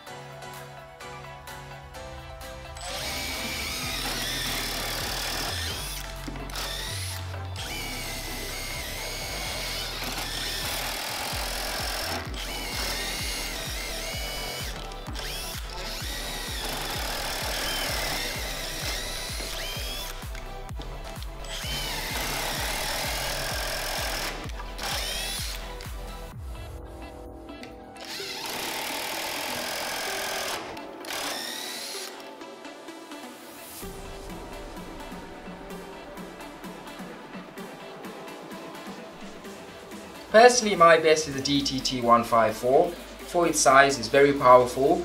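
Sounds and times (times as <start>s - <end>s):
impact driver drilling into wood: 2.8s - 26.0s, 28.0s - 32.3s.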